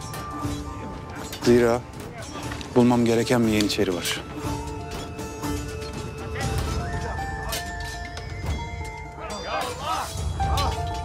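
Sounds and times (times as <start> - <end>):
drama score with held notes: 0.0 - 11.0.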